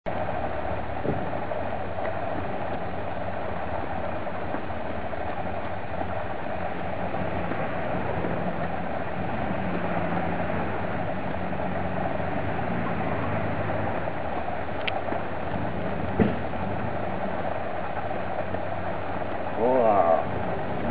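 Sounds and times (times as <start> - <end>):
outdoor background noise: 0.0 - 20.9
soft knocks: 16.1 - 16.5.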